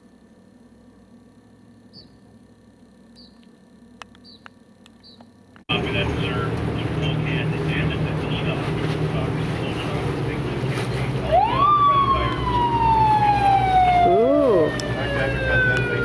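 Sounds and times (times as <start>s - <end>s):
boat engine running: 5.4s - 16.0s
siren-like tone: 11.2s - 16.0s.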